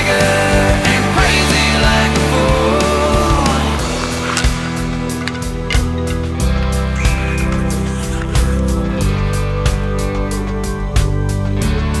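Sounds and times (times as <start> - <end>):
bass and guitar chords: 0.0 - 12.0.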